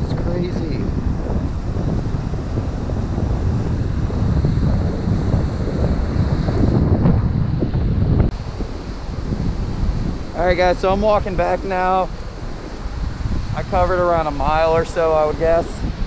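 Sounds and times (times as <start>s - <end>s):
surf washing on beach: 0.0s - 16.0s
wind buffeting microphone: 0.0s - 16.0s.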